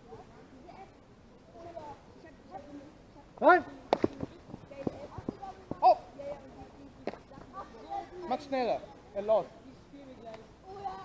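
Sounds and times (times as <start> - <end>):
bat cracking: 3.9 - 6.0.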